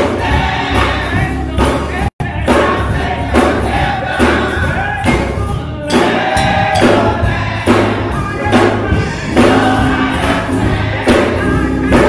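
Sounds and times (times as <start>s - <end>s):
congregation and choir singing: 0.0s - 12.0s
musical accompaniment: 0.0s - 12.0s.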